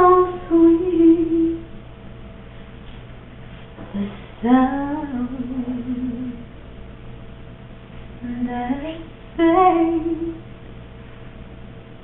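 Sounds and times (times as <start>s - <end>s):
woman singing: 0.0s - 1.6s, 4.0s - 6.4s, 8.2s - 10.4s.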